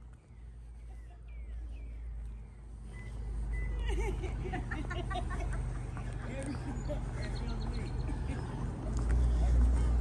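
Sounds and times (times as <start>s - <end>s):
low outdoor rumble: 0.0s - 10.0s
indistinct voices talking: 5.5s - 10.0s.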